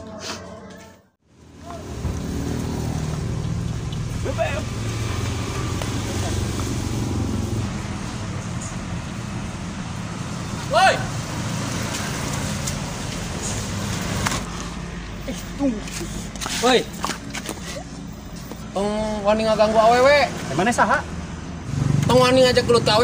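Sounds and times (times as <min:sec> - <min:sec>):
low rumble of road traffic: 0:01.2 - 0:23.0.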